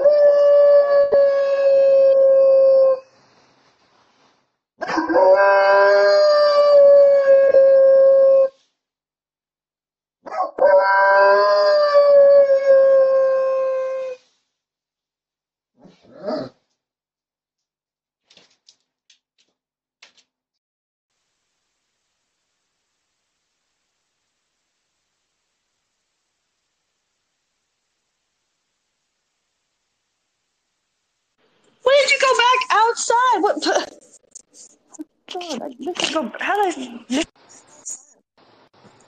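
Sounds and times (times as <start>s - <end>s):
dog howling: 0.0s - 3.0s, 4.9s - 8.6s, 10.3s - 14.2s.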